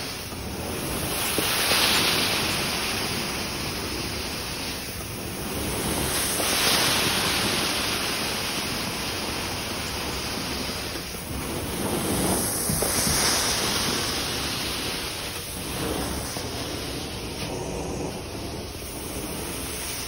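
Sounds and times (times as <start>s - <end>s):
carpet extraction wand hiss and suction: 0.0s - 20.0s.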